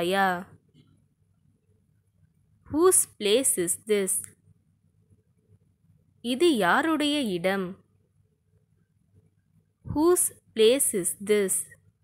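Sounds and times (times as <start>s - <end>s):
woman speaking: 0.0s - 0.6s, 2.6s - 4.4s, 6.2s - 7.9s, 9.8s - 11.8s
faint low hum: 0.0s - 12.0s.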